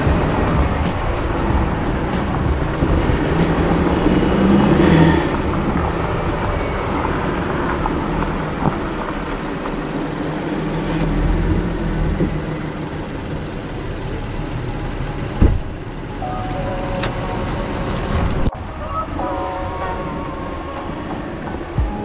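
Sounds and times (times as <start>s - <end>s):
car engine running: 0.0s - 18.5s.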